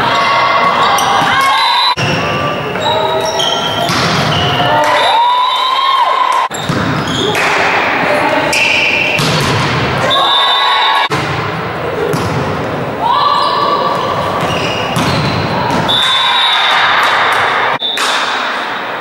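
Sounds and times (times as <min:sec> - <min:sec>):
volleyball being hit: 0:03.8 - 0:05.0, 0:09.1 - 0:09.9, 0:11.1 - 0:12.6.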